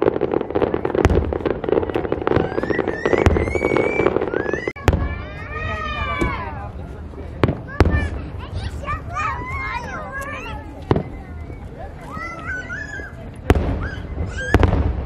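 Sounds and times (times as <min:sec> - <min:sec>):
fireworks bangs: 0:00.0 - 0:15.0
fireworks crackling: 0:00.0 - 0:15.0
spectators calling out: 0:01.7 - 0:06.7.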